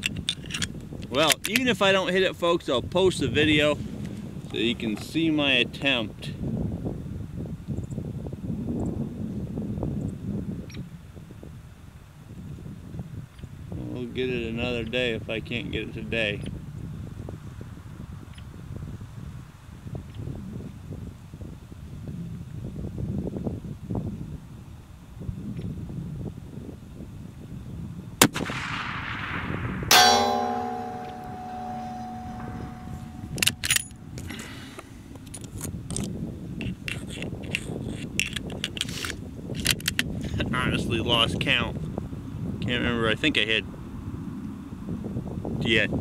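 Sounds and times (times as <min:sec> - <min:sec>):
low wind noise: 0:00.0 - 0:14.2, 0:14.8 - 0:46.0
rifle shot: 0:28.2 - 0:32.9
metallic clang of steel target: 0:29.9 - 0:34.4.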